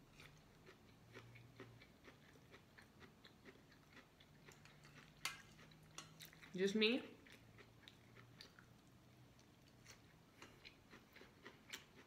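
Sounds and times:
chewing corn kernels: 0.0 - 12.0.

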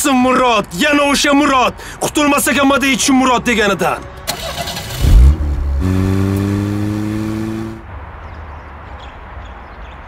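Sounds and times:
car engine revving: 4.3 - 7.8.

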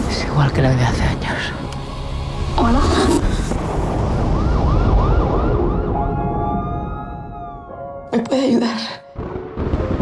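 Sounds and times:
emergency vehicle siren: 3.9 - 8.0.

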